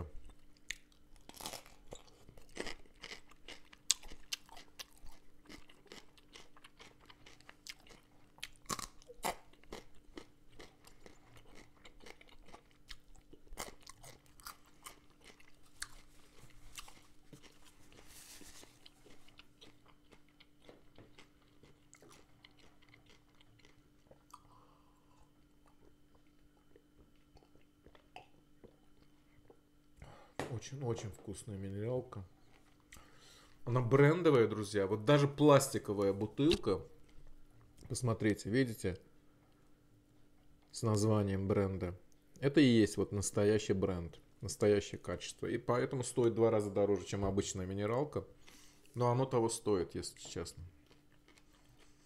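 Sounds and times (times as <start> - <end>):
crunching and chewing: 0.2 - 29.7, 32.2 - 33.6, 50.2 - 52.0.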